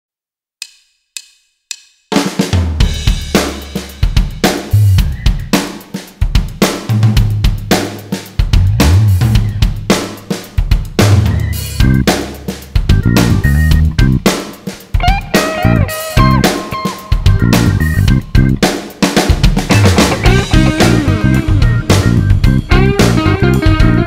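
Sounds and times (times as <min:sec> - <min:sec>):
drum kit beat: 0:00.6 - 0:24.0
rock band playing: 0:10.9 - 0:24.0
low bass line: 0:11.2 - 0:12.1, 0:12.9 - 0:14.3, 0:15.6 - 0:16.5, 0:17.2 - 0:18.6, 0:19.8 - 0:24.0.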